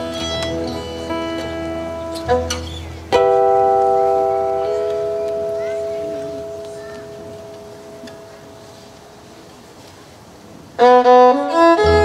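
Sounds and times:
acoustic guitar chord ringing: 0.0s - 9.5s.

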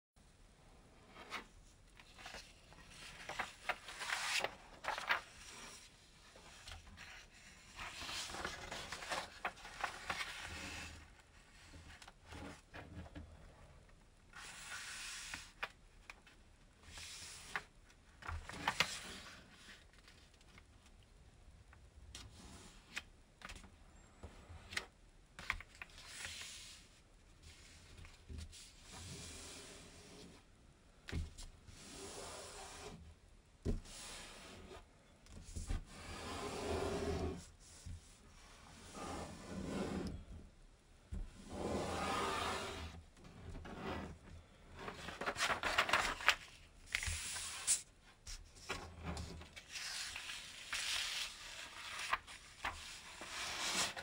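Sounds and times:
paper rustling: 1.2s - 12.8s, 17.0s - 20.6s, 44.8s - 54.0s.

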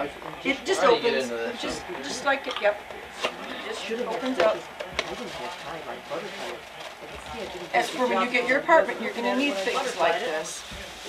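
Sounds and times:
indistinct talk of people: 0.0s - 11.0s.

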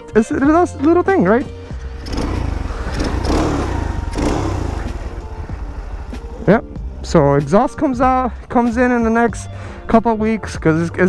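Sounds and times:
motorcycle engine revving and idling: 1.4s - 8.4s.

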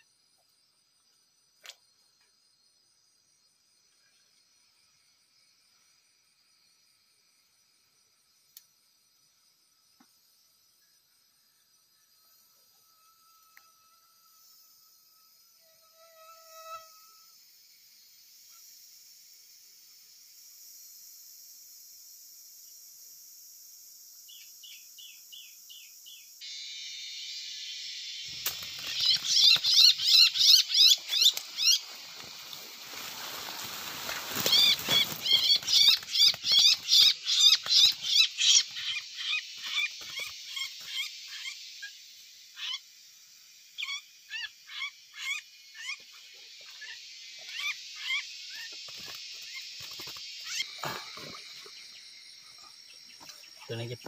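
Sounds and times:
insects buzzing: 0.0s - 54.0s
rustling of leaves and bamboo: 28.2s - 38.8s
small bird calling shrilly: 28.7s - 31.9s, 34.3s - 41.6s.

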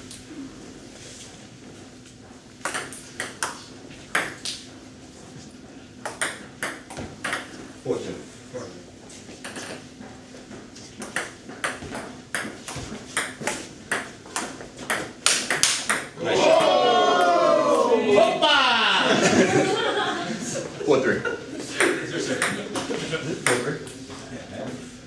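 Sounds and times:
table tennis ball clicking: 2.6s - 4.6s, 6.0s - 7.5s, 11.0s - 16.1s.

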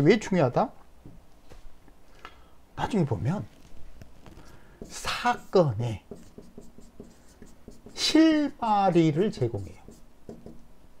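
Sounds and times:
stylus tapping and scratching screen: 3.4s - 8.4s, 9.3s - 10.6s.

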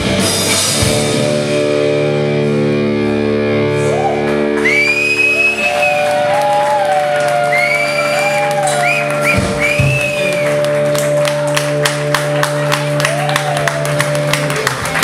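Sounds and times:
live rock band playing: 0.0s - 15.0s
people clapping: 4.0s - 15.0s.

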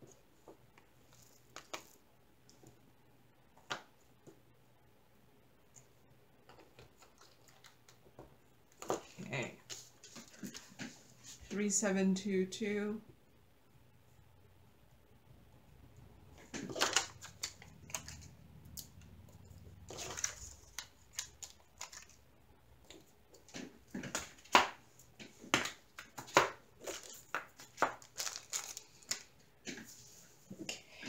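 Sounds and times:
thin plastic crinkling: 6.5s - 8.0s, 16.4s - 19.0s, 19.6s - 22.2s, 25.6s - 30.2s.

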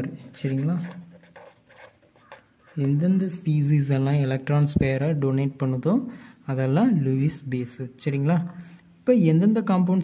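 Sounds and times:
felt-tip pen writing on paper: 0.4s - 2.8s.

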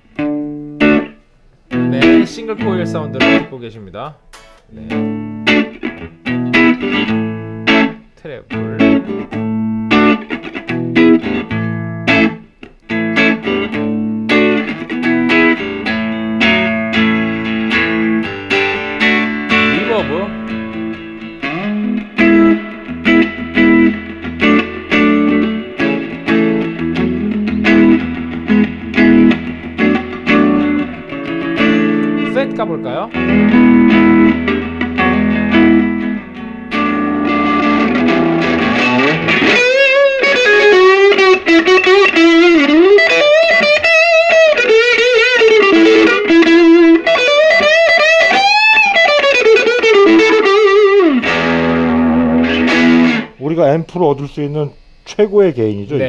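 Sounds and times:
overdriven electric guitar: 0.0s - 3.5s, 4.3s - 53.4s.

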